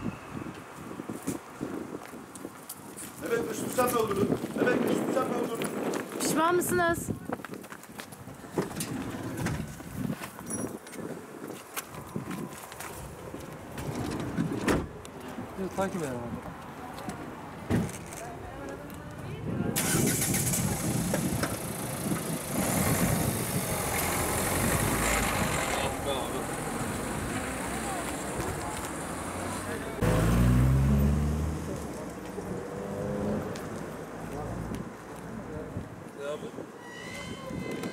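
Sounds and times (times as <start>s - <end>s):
street noise: 0.0s - 37.9s
van engine pulling away: 19.8s - 33.6s.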